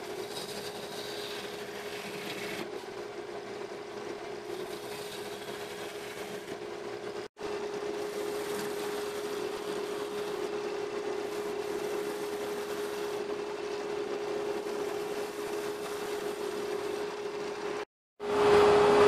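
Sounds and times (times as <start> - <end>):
turning tool cutting wood: 0.0 - 2.9, 4.4 - 6.6, 7.6 - 17.4
wood lathe humming: 0.0 - 17.9.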